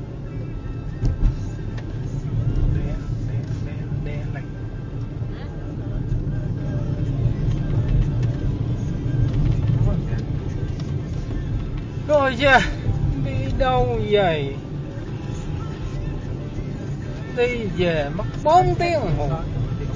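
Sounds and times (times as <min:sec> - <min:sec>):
car engine and tyres rumbling: 0:00.0 - 0:19.9.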